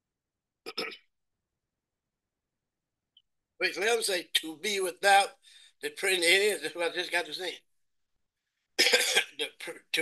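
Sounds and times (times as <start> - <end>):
man coughing: 0.7 - 1.1, 8.8 - 9.4
man speaking: 3.6 - 7.7, 9.1 - 10.0.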